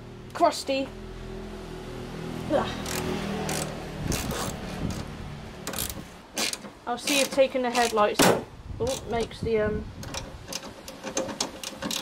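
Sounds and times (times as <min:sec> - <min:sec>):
ratchet wrench clicking: 0:02.8 - 0:05.0, 0:05.7 - 0:08.0, 0:10.0 - 0:12.0.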